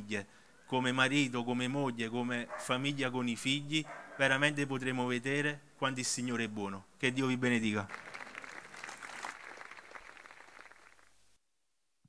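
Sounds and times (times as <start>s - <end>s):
audience applauding: 7.9s - 11.2s.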